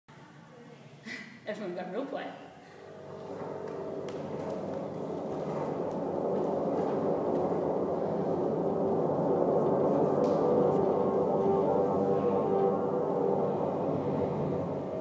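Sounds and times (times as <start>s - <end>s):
ambient music with gong-like tones: 2.8s - 15.0s.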